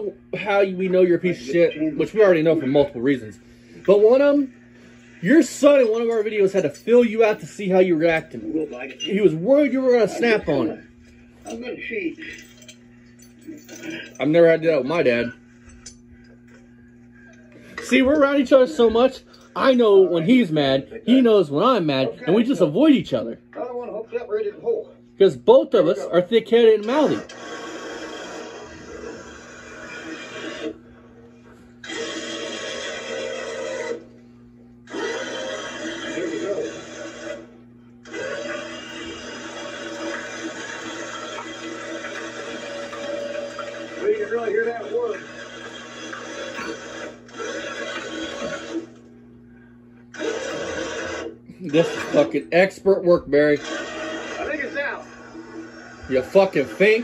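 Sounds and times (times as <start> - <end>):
muffled voices from tv speaker: 0.0 - 32.1, 33.6 - 49.5, 50.1 - 57.0
low steady hum: 0.0 - 57.0
chain dragging post: 12.2 - 14.3.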